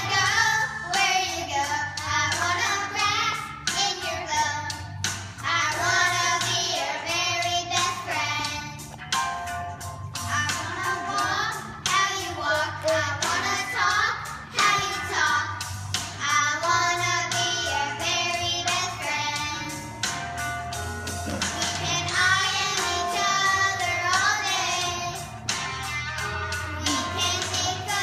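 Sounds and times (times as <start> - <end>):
girls singing together: 0.0 - 4.6, 5.4 - 8.7, 10.4 - 15.6, 21.3 - 25.3, 26.8 - 28.0.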